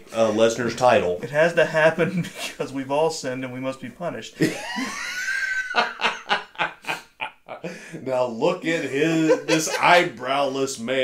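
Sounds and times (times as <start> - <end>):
man laughing hard: 4.4 - 7.8, 8.8 - 10.2.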